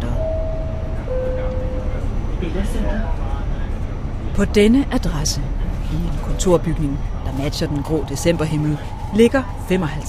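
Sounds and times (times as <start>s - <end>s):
two-note electronic chime: 0.0s - 2.2s
moving vehicle rumble: 0.0s - 10.0s.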